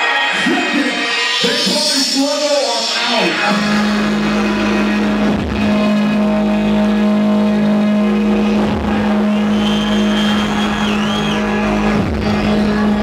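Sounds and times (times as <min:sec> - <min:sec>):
dubstep music: 0:00.0 - 0:13.0
growling low synth bass: 0:03.5 - 0:13.0.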